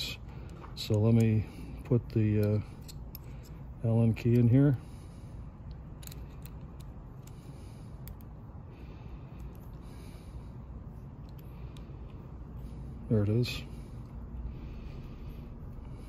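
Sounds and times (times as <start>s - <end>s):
steady low hum: 0.0s - 16.0s
allen key clicking in screw: 0.4s - 4.6s, 5.6s - 8.4s.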